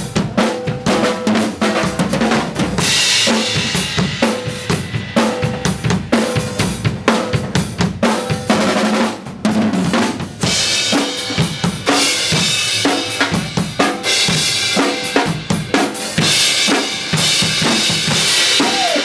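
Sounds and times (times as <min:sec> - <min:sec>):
bass drum and snare beat: 0:00.0 - 0:19.0
loud cymbal wash: 0:02.8 - 0:07.0.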